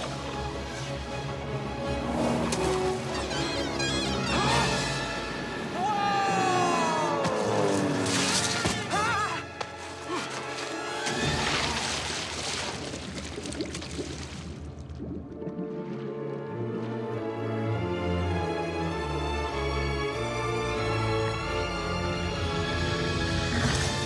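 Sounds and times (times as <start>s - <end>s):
orchestral music: 0.0s - 12.3s, 15.4s - 24.0s.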